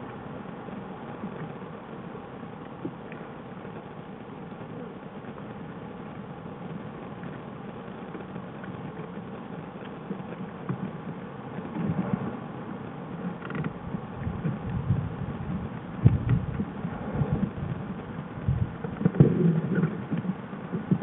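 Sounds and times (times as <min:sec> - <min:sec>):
irregular low pulsing: 0:00.0 - 0:21.0
steady hiss: 0:00.0 - 0:21.0.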